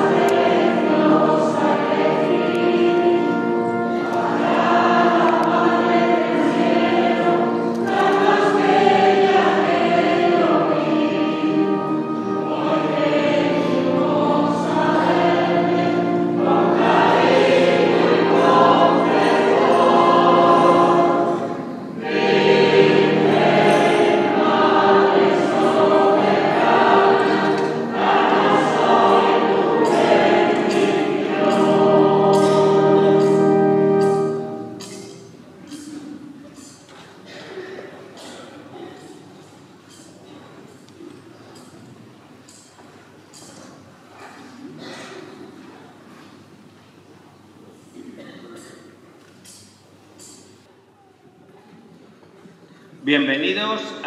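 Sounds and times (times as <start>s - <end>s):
choir singing a slow hymn: 0.0s - 36.6s
held accompanying notes: 0.0s - 37.6s.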